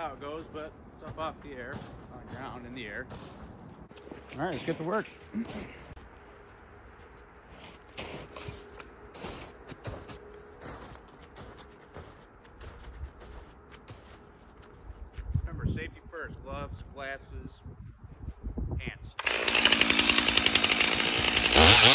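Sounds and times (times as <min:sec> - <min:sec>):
footsteps crunching through snow: 0:00.1 - 0:15.6.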